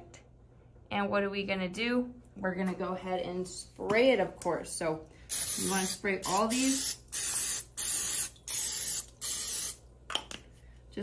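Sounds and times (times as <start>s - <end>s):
aerosol spray hissing: 5.3s - 9.8s.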